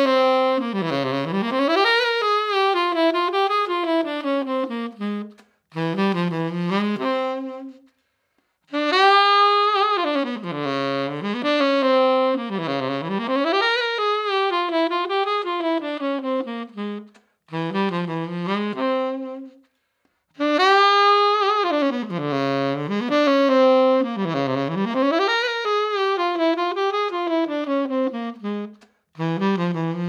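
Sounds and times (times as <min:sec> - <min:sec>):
tenor saxophone melody: 0:00.0 - 0:30.0.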